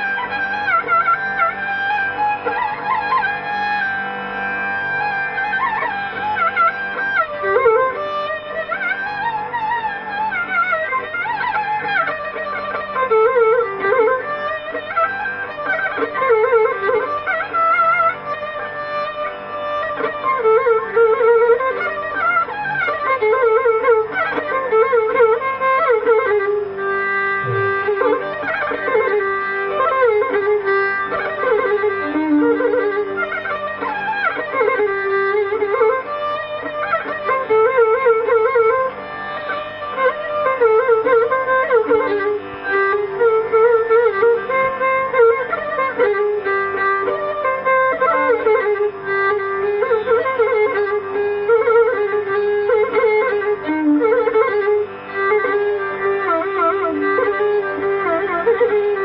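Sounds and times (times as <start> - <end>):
classical string instrument melody: 0.0 - 59.0
steady held drone note: 27.2 - 28.6.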